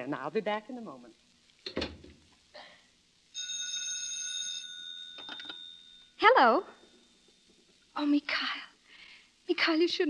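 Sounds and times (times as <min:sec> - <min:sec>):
telephone bell ringing: 0:03.4 - 0:06.4.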